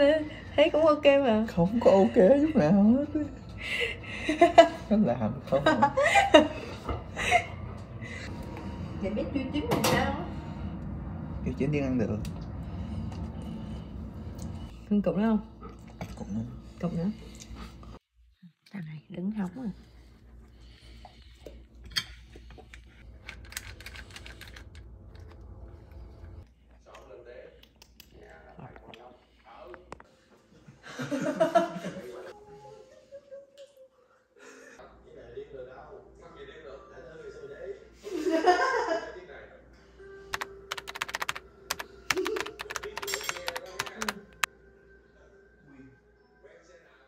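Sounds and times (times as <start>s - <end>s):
soft background music: 34.9s - 47.0s
keyboard typing clicks: 40.3s - 44.2s.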